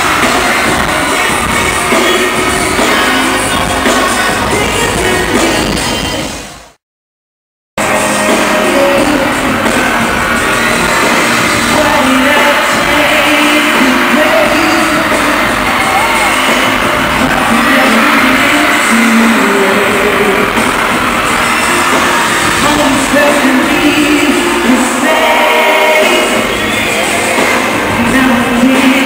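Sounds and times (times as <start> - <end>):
man singing into a microphone: 0.0 - 6.0, 7.8 - 10.7, 11.5 - 16.2, 17.2 - 20.9, 22.5 - 29.0
amplified backing music: 0.0 - 6.8, 7.8 - 29.0.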